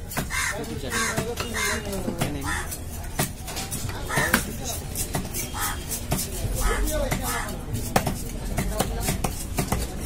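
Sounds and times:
knife chopping on wooden block: 0.0s - 10.0s
crow cawing: 0.2s - 2.8s, 4.1s - 4.4s, 5.5s - 5.8s, 6.6s - 7.6s.

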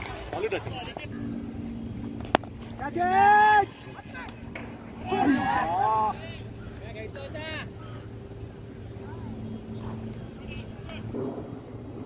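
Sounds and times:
faint low hum: 0.0s - 12.0s
player shouting: 2.8s - 4.4s, 5.0s - 6.4s.

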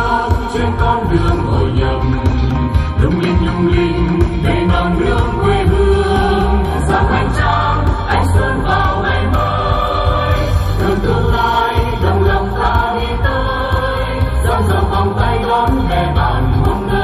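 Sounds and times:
pulsing bass: 0.0s - 17.0s
choir singing held notes: 3.2s - 17.0s.

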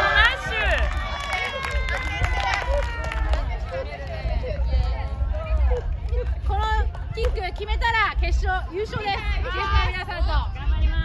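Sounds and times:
women cheering and shouting: 0.0s - 11.0s.

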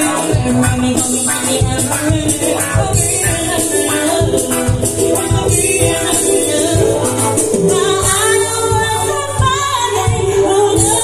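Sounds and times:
live band music through pa: 0.0s - 11.0s
woman singing: 0.0s - 11.0s.

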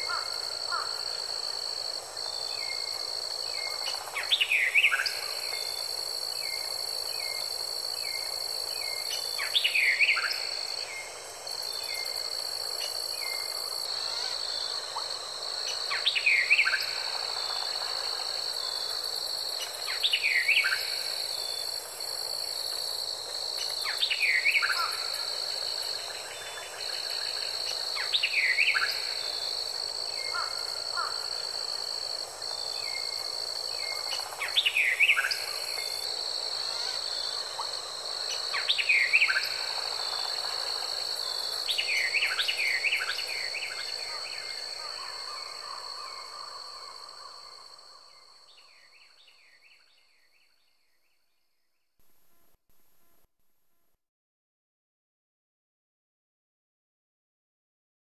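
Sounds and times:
insect trill: 0.0s - 51.7s.

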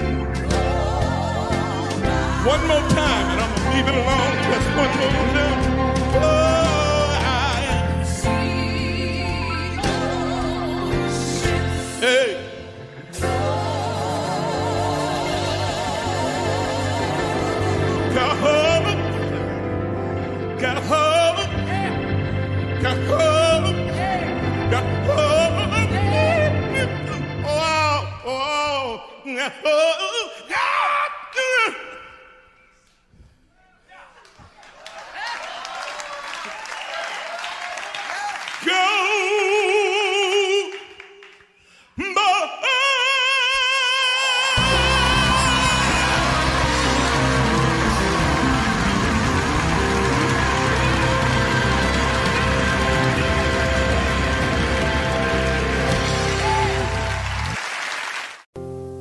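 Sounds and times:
live gospel band playing: 0.0s - 29.0s, 43.9s - 58.8s
audience applauding: 34.0s - 39.6s, 44.6s - 58.5s.

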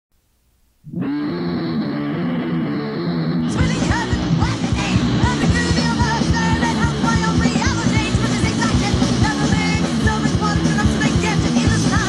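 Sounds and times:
distorted electric guitar chord: 0.6s - 12.0s.

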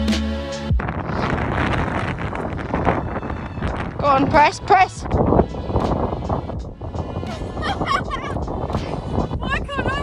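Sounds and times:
background music with beat: 0.0s - 0.9s, 4.6s - 9.4s
wind buffeting microphone: 0.7s - 10.0s.

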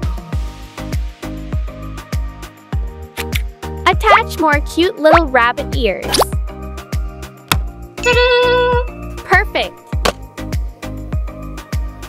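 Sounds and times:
upbeat children's music: 0.0s - 12.0s.

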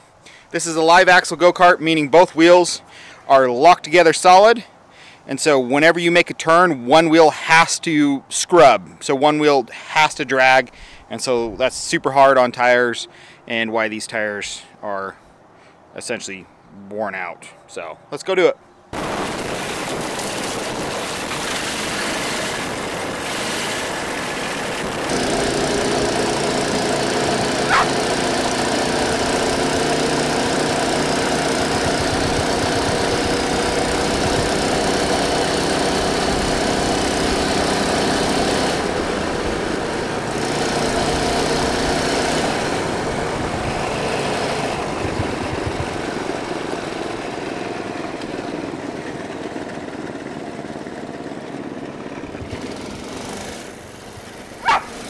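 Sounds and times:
go-kart engine running: 19.2s - 55.0s
tyre and wind noise: 42.7s - 46.3s.

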